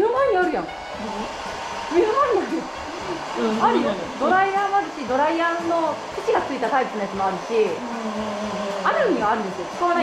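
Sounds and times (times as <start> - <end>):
hair dryer blowing: 0.0 - 10.0
person speaking: 2.9 - 4.7.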